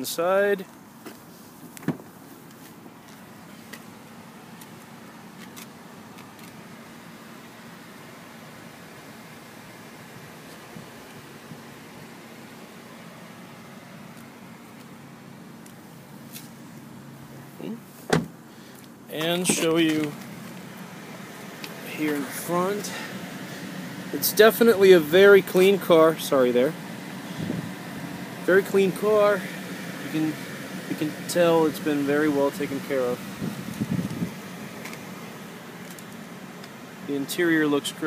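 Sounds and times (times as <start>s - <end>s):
car door shutting thump: 1.8s - 2.1s, 18.0s - 18.4s.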